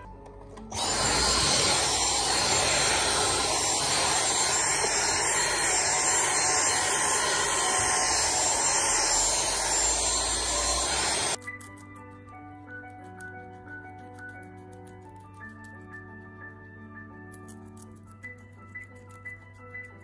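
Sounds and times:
vacuum cleaner running: 0:00.6 - 0:11.4.

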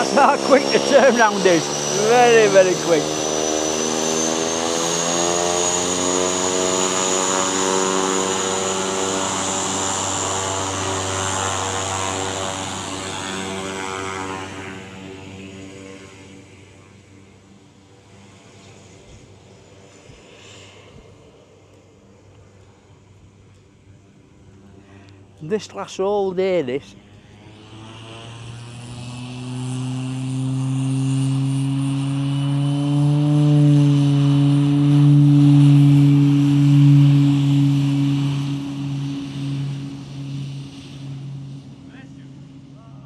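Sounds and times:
propeller plane engine whine: 0:00.0 - 0:43.0.

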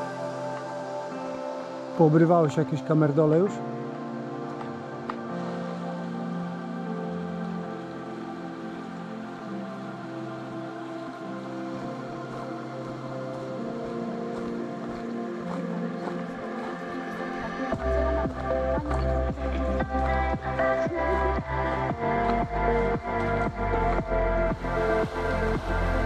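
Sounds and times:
soft sustained chords: 0:00.0 - 0:26.0
steady beat with bass: 0:17.8 - 0:26.0.

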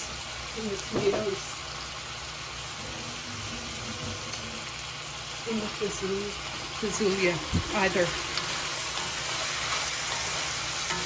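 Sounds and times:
vegetables sizzling in a pan: 0:00.0 - 0:11.0.

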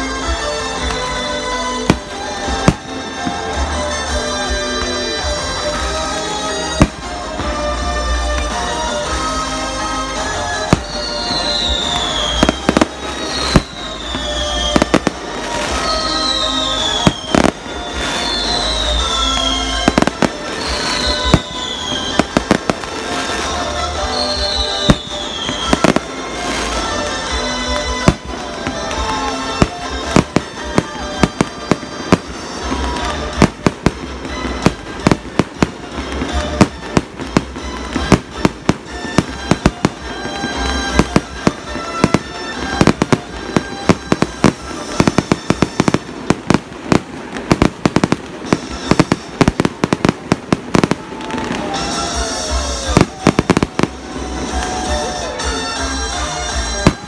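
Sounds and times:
fireworks bangs and crackles: 0:00.0 - 0:57.0
music: 0:00.0 - 0:57.0.

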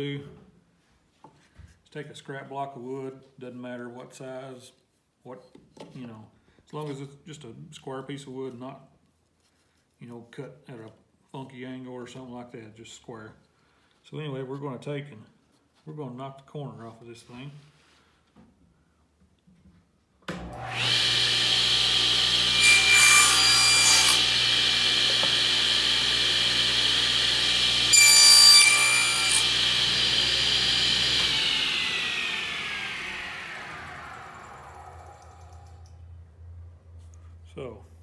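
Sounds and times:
table saw whining: 0:20.3 - 0:36.1
saw blade cutting wood: 0:20.4 - 0:34.8.

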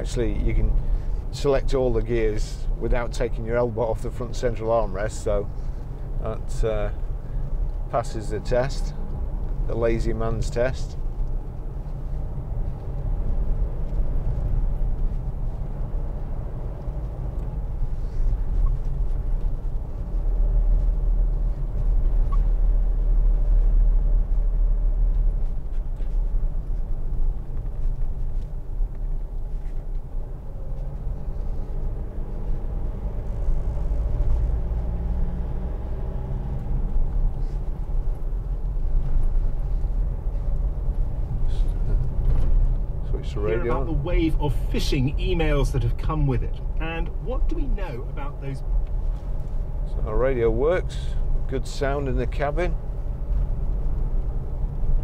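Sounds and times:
diesel engine rumble: 0:00.0 - 0:55.0
tyres on wet road: 0:00.0 - 0:55.0.

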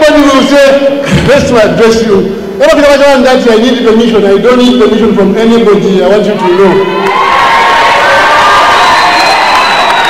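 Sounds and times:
large crowd cheering and shouting: 0:06.2 - 0:10.0.

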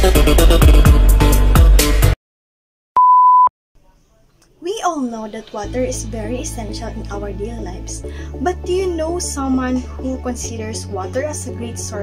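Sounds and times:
electronic beep: 0:03.0 - 0:03.5
woman speaking: 0:04.6 - 0:12.0.

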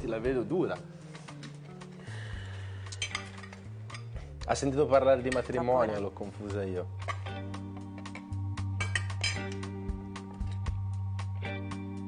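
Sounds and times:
metal fork clinking on plate: 0:08.8 - 0:09.6.

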